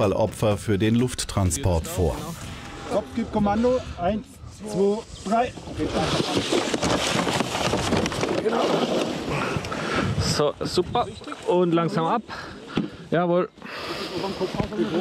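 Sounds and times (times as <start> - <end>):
men talking: 0.0 - 6.7, 8.3 - 15.0.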